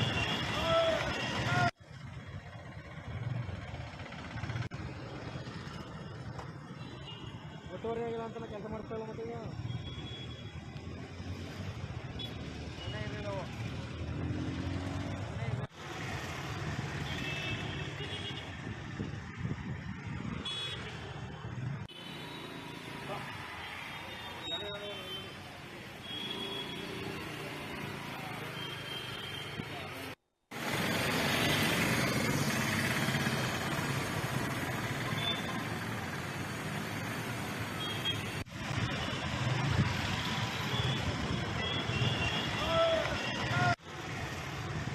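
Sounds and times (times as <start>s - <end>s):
road traffic: 0.0s - 44.9s
street noise: 0.0s - 44.9s.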